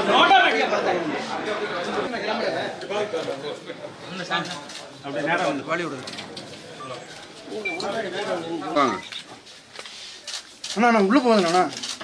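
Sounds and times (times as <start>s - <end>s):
group of people talking: 0.0s - 12.0s.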